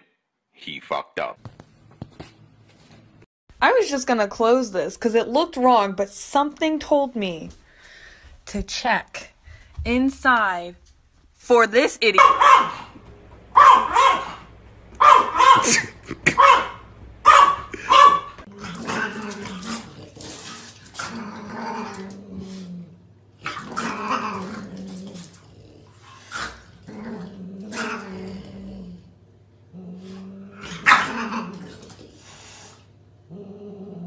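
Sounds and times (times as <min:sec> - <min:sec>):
small dog barking: 0:12.2 - 0:13.0, 0:13.6 - 0:18.4, 0:30.8 - 0:31.5
dog growling low: 0:17.7 - 0:32.4, 0:33.2 - 0:34.0.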